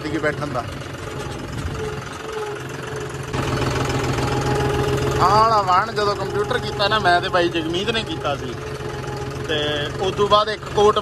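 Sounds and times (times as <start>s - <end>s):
tractor diesel engine running: 0.0s - 11.0s.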